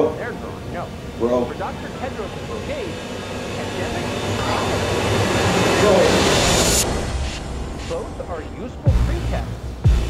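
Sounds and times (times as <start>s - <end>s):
rumbling hissing riser effect: 0.0s - 10.0s.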